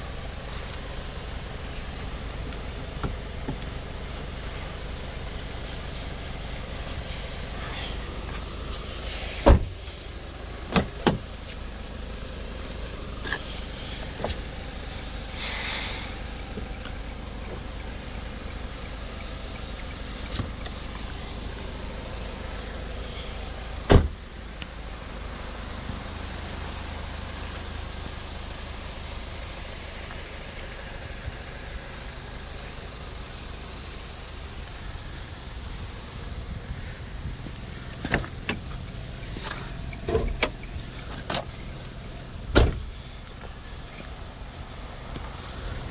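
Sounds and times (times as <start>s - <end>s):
car door closing thump: 3.0s - 3.7s, 9.3s - 9.9s, 10.7s - 11.3s, 20.3s - 20.6s, 23.9s - 24.2s, 38.0s - 38.8s, 39.4s - 41.5s, 42.5s - 42.9s
car door slam: 9.3s - 9.9s, 10.7s - 11.3s, 23.8s - 24.2s, 38.0s - 38.8s, 40.1s - 41.5s, 42.5s - 43.0s.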